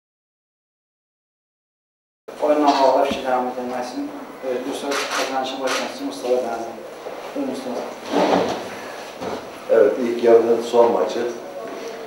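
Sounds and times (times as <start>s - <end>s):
chair shuffling: 2.4s - 3.9s, 4.8s - 9.7s.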